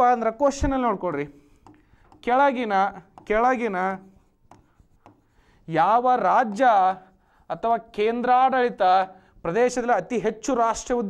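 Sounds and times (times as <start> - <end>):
pen tapping on board: 1.1 - 2.4, 3.0 - 3.6, 4.4 - 5.3, 6.4 - 6.7.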